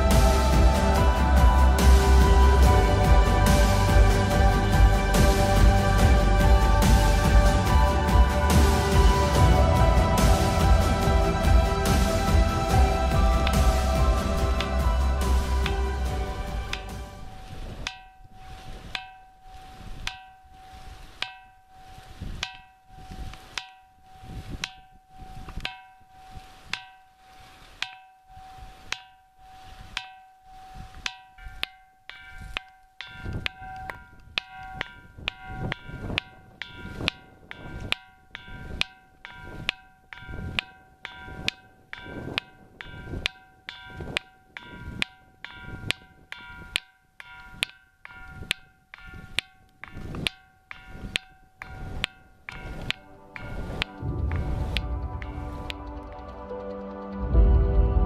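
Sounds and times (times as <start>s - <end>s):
stone striking ringing rock: 0.0s - 55.9s.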